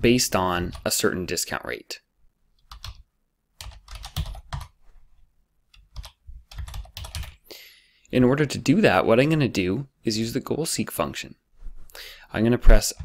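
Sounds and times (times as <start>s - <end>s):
computer keyboard typing: 2.6s - 3.0s, 3.6s - 4.8s, 5.8s - 7.4s.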